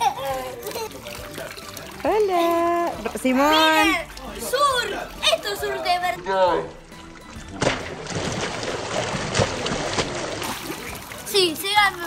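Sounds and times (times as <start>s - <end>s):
hose water splashing into pool: 0.0s - 12.0s
child's voice: 11.3s - 12.0s.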